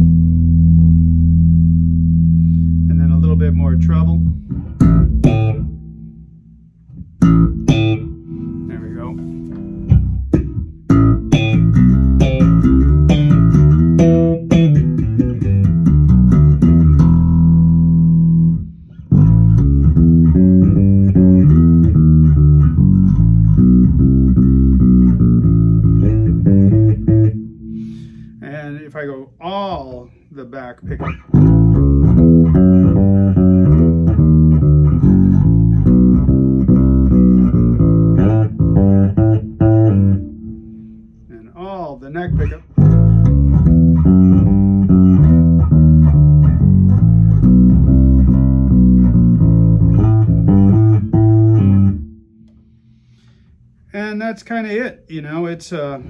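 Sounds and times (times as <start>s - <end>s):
electric bass played fingerstyle: 0.0s - 54.0s.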